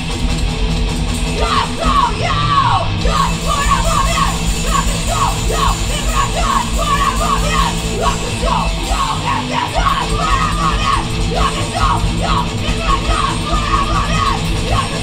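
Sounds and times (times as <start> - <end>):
bass guitar: 0.0 - 15.0
distorted electric guitars: 0.0 - 15.0
drums: 0.0 - 15.0
yelled vocals: 1.2 - 15.0.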